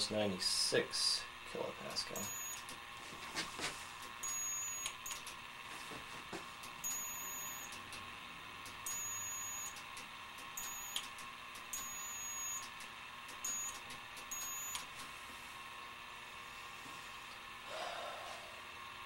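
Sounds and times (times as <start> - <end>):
high-pitched electrical whine: 0.0 - 2.8, 4.2 - 5.4, 6.8 - 15.0
steady hum: 0.0 - 19.0
sharp electrical clicks: 2.1 - 2.8, 4.0 - 5.4, 6.6 - 15.1.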